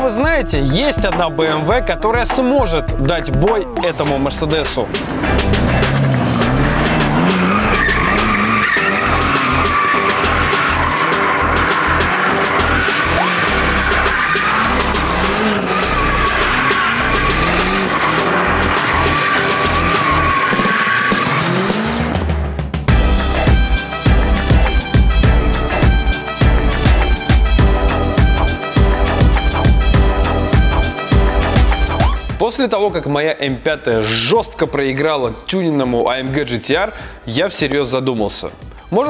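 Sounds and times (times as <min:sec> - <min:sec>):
car engine revving: 0:04.6 - 0:32.1
tyres squealing: 0:04.9 - 0:21.8.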